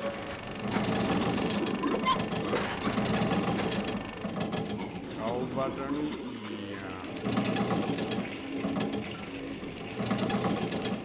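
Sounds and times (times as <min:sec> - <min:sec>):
refrigerator motor rattle and hum: 0:00.0 - 0:11.0.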